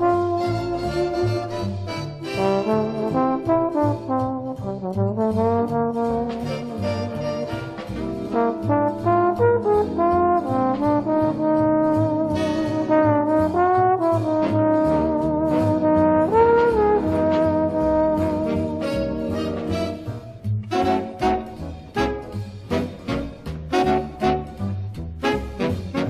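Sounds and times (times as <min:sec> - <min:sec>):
brass section: 0:00.0 - 0:26.0
plucked string bass: 0:00.0 - 0:26.0
trombone playing melody: 0:00.0 - 0:26.0.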